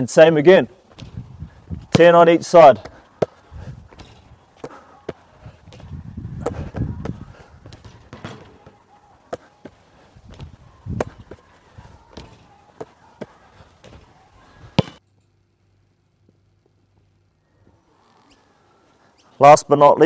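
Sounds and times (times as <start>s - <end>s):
basketball thudding on court: 0.9s - 1.2s, 5.1s - 9.4s, 14.8s - 15.0s
ball knocking on backboard and rim: 7.8s - 8.8s, 14.8s - 15.0s.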